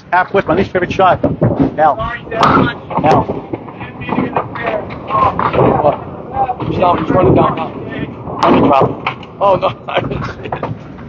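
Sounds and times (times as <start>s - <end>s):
indistinct voices talking: 0.0s - 10.8s.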